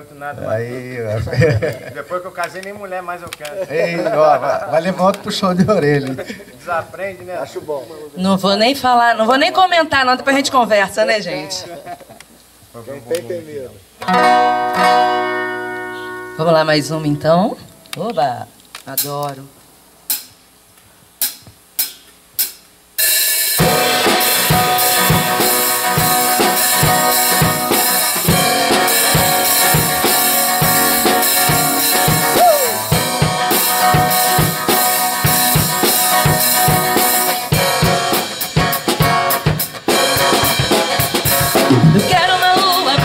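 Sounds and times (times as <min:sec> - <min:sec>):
live band playing: 0:14.0 - 0:18.1, 0:23.0 - 0:43.0.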